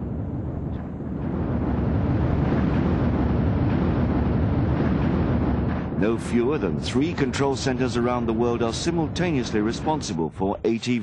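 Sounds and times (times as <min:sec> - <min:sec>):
rocket lifting off rumble: 0:00.0 - 0:10.4.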